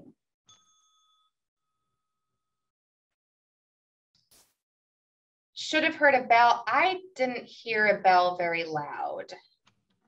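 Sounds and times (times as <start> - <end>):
small timer bell ding: 0.5 - 2.0.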